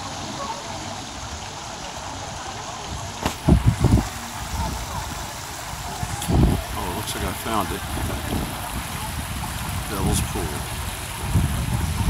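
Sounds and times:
creek water running over rocks: 0.0 - 12.0
faint voices of people: 0.0 - 12.0.

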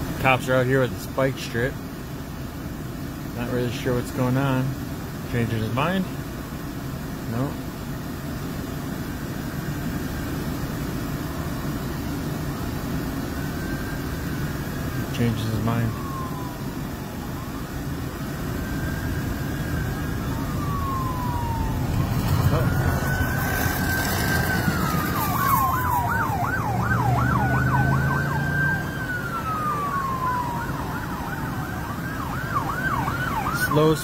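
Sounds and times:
police sirens wailing and yelping: 8.9 - 34.0.

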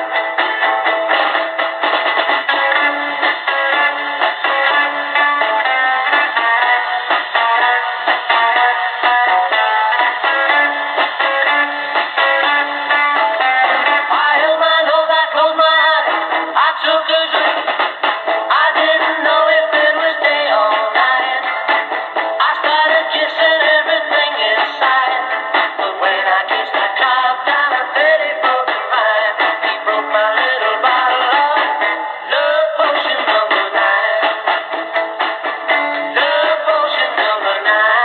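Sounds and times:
song on small radio speaker: 0.0 - 38.0.

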